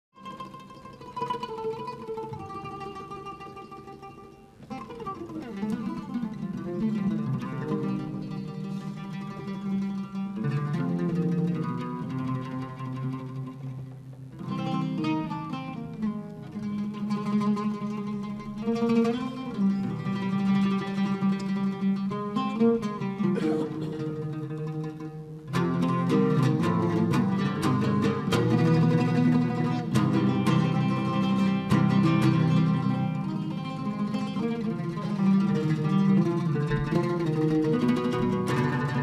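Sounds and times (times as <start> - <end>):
oud plucked with a plectrum: 0.1 - 39.0.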